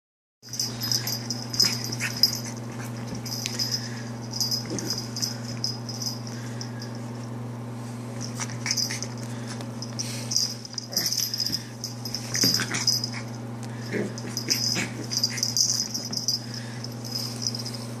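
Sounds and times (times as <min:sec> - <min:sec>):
steady low hum: 0:00.4 - 0:18.0.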